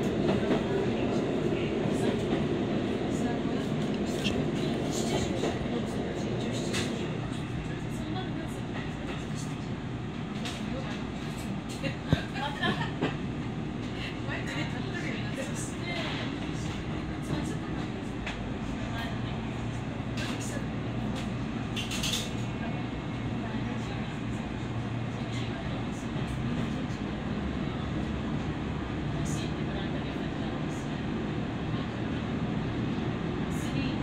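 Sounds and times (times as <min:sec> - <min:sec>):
train engine and wheel rumble: 0:00.0 - 0:34.0.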